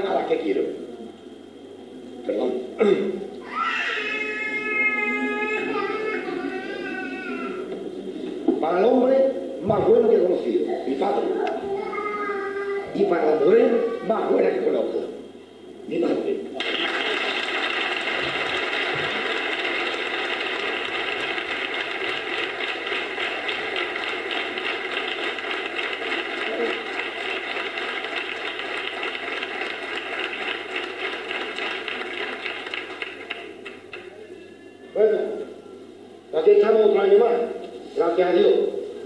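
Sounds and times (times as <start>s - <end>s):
audience applauding: 16.6s - 34.2s.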